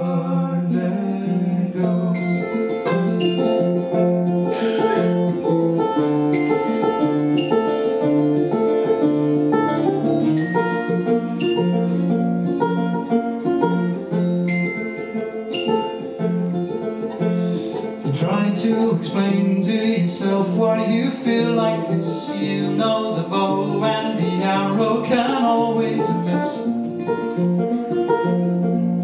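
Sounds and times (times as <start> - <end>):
acoustic guitar: 0.0 - 29.0
banjo: 0.0 - 29.0.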